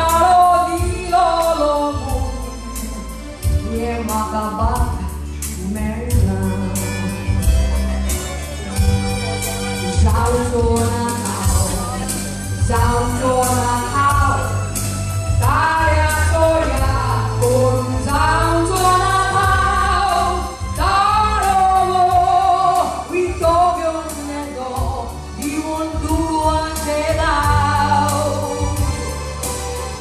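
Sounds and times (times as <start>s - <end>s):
woman singing through pa: 0.0s - 7.7s, 9.8s - 29.2s
amplified backing music: 0.0s - 30.0s.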